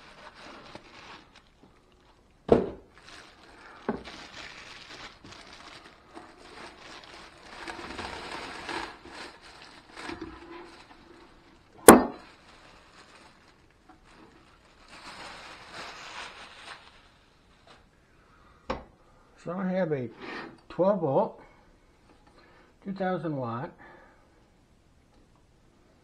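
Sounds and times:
plastic bag crinkling: 0.0 - 18.0.

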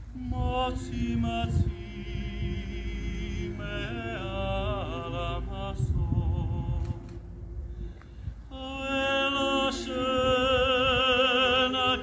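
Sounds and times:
low rumble: 0.0 - 12.0
man singing: 0.1 - 7.2, 8.5 - 12.0.

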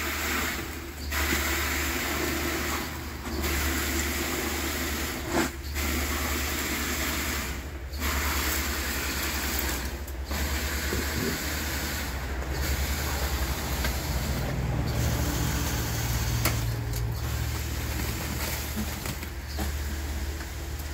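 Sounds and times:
concrete pump drone: 0.0 - 20.9
concrete rushing through hose: 0.0 - 20.9.

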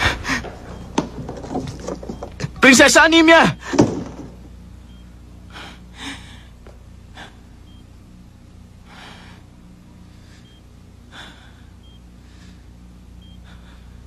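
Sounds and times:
low steady hum: 0.0 - 14.0
person breathing: 5.5 - 7.5, 8.8 - 14.0.

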